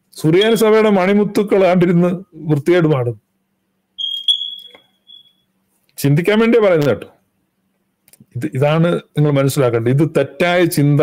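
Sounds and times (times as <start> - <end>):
high electronic beep: 4.0 - 5.4.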